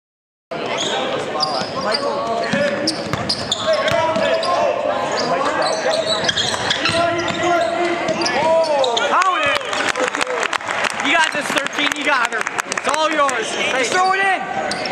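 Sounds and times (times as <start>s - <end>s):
sneakers squeaking on floor: 0.6s - 9.2s, 13.8s - 14.9s
voices and shouts echoing: 0.6s - 14.9s.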